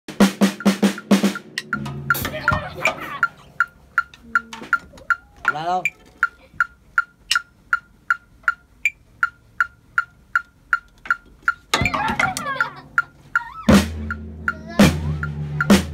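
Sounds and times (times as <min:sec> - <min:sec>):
drum kit hit: 0:00.1 - 0:03.4, 0:13.7 - 0:15.9
backing music: 0:00.1 - 0:04.8, 0:13.7 - 0:15.9
metronome clicking: 0:00.4 - 0:15.9.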